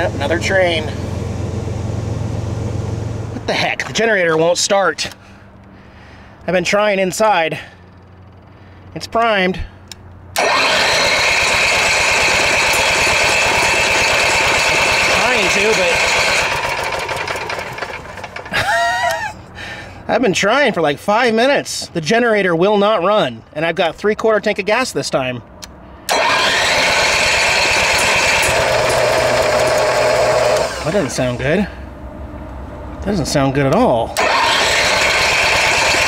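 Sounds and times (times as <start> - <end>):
generator engine cranking: 10.3 - 19.3, 26.0 - 31.8, 34.0 - 36.0.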